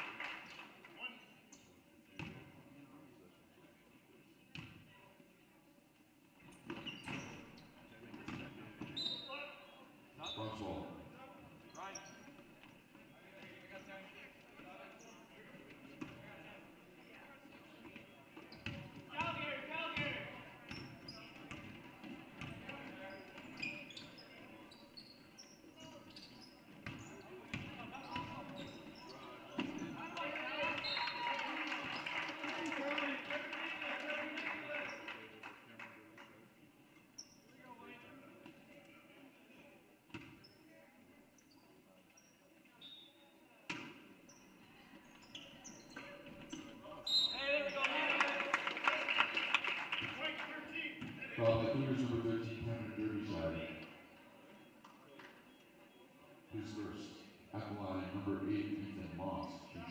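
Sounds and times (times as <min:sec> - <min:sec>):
voices of players and spectators: 0:00.0 - 0:59.9.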